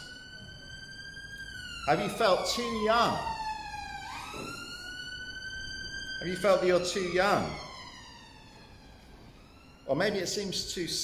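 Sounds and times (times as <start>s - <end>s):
emergency vehicle siren wailing: 0.0s - 11.0s.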